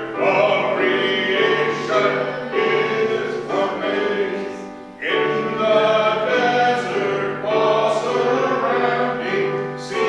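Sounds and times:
choir singing church music: 0.0s - 10.0s.

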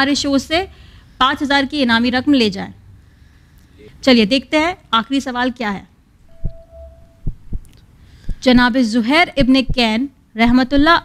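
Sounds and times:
steady tone: 6.2s - 7.8s
deep heartbeat-like thumps: 7.2s - 7.7s.

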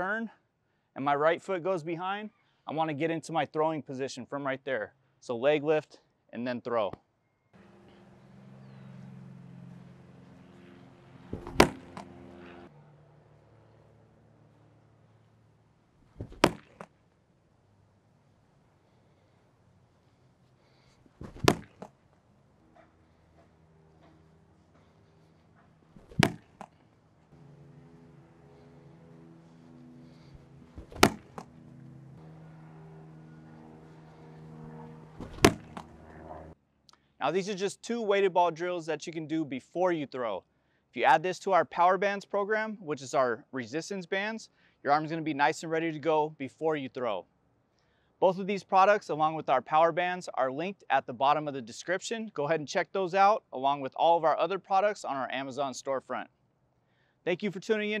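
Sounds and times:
ball thudding against wall: 11.3s - 12.1s, 16.2s - 16.9s, 21.2s - 22.0s, 26.0s - 26.8s, 30.8s - 31.5s, 35.2s - 36.0s.

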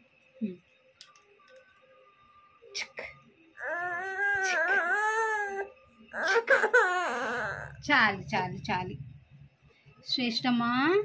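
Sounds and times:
toddler whining: 3.6s - 7.8s.

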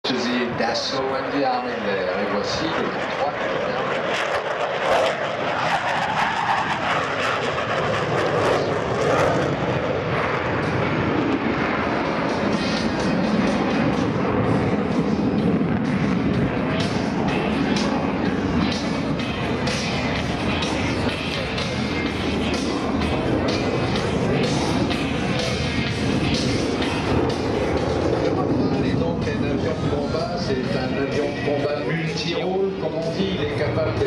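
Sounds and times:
jet engines roaring with afterburners: 0.0s - 34.0s
music: 11.8s - 33.4s.

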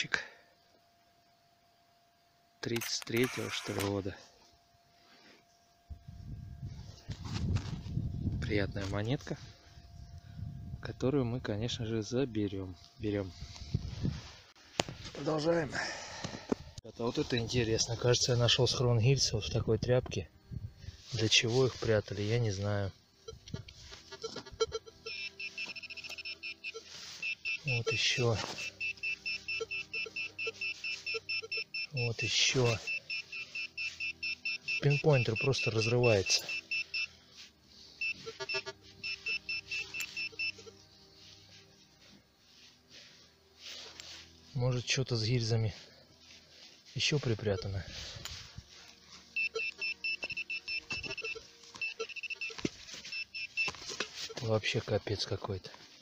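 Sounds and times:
metal detector rapid high beeps: 2.8s - 4.0s, 23.2s - 37.2s, 38.0s - 40.8s, 49.3s - 54.4s
probe scraping in soil: 20.9s - 55.4s.

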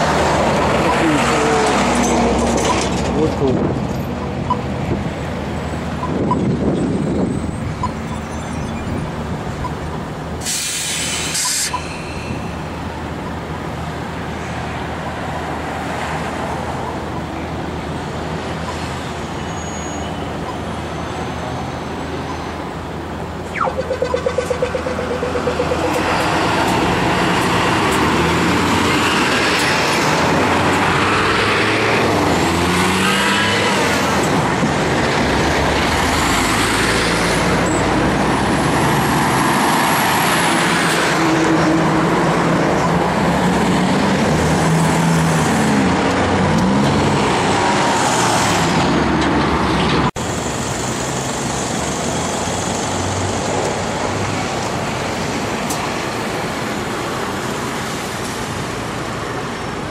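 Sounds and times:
trucks and cars driving past: 0.0s - 59.9s
rising and falling high whines: 23.5s - 29.4s.

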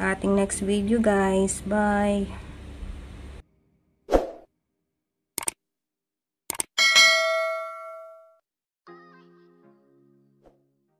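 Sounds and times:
bell-like ding: 6.8s - 8.4s
music: 8.9s - 10.9s.

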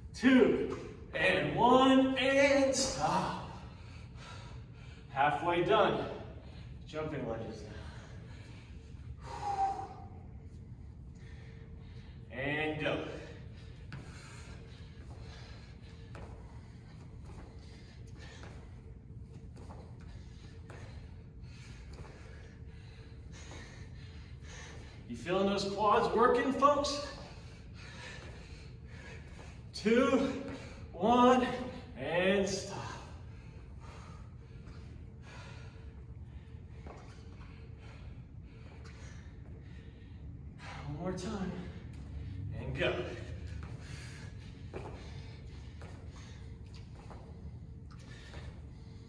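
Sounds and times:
room hum: 0.0s - 49.0s
man breathing hard: 2.8s - 49.0s.

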